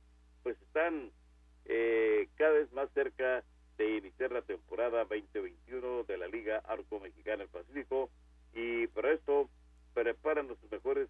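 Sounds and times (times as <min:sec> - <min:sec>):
steady low hum: 0:00.0 - 0:11.0
thin telephone voice speaking: 0:00.5 - 0:01.1, 0:01.7 - 0:11.0.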